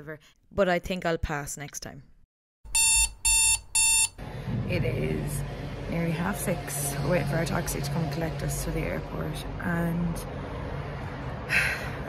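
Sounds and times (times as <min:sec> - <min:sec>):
electronic alarm beeping: 0:02.7 - 0:04.2.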